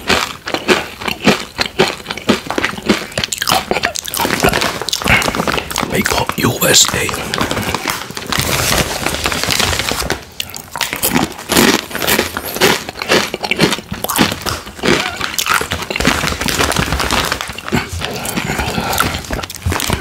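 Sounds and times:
plastic chip bag crinkling: 0:00.0 - 0:20.0.

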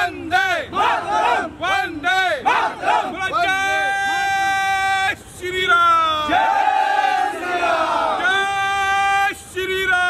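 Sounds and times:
men shouting slogans: 0:00.0 - 0:09.4.

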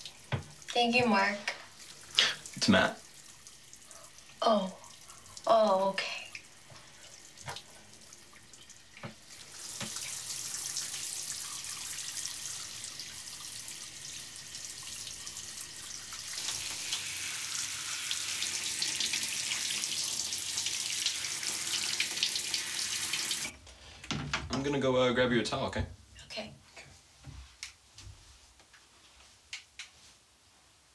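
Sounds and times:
water splashing in bathtub: 0:00.0 - 0:23.5.

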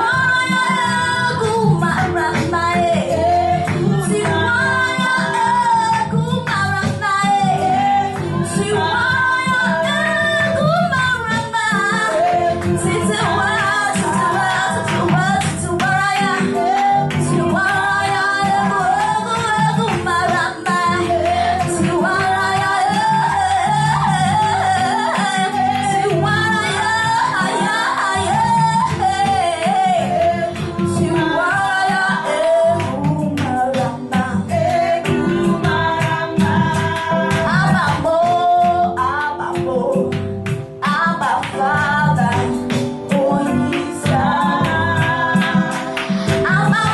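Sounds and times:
woman singing into a microphone: 0:00.0 - 0:46.9.

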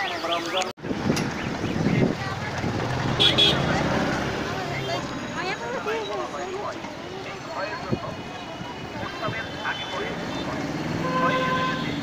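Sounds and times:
voices: 0:00.0 - 0:12.0
horn-like tone: 0:11.0 - 0:12.0.

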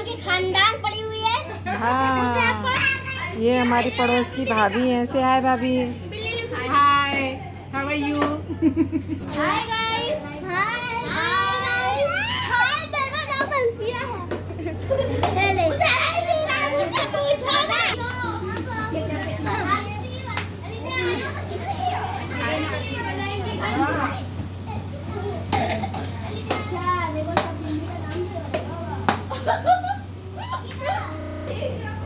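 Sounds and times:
children and adults chattering: 0:00.0 - 0:32.0
steady low hum: 0:00.0 - 0:32.0.

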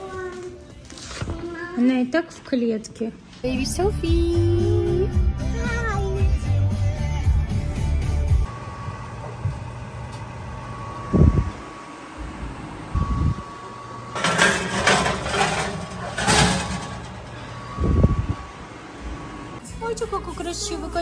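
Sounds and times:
dishes scraping metal rack: 0:14.1 - 0:17.7.

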